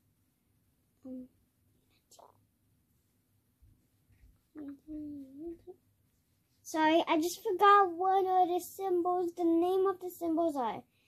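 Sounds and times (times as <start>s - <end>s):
girl humming hesitantly: 1.0s - 1.3s, 4.6s - 5.7s.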